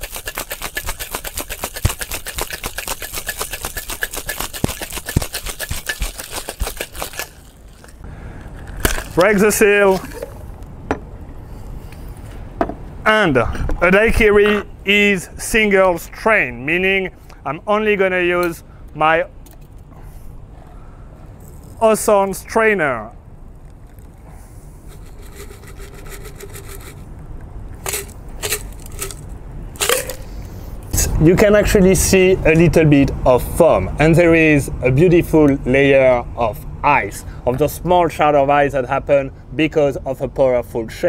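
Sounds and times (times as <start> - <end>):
metal shaker tin clinking on table: 0.0 - 7.9, 27.8 - 29.2
ice shards crackling: 0.0 - 8.0, 8.7 - 9.4, 27.8 - 30.2
low city rumble: 7.0 - 41.0.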